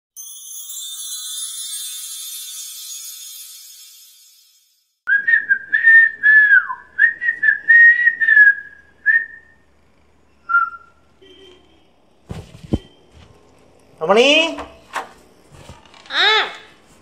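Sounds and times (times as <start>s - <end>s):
person whistling a tune: 5.1s - 9.6s.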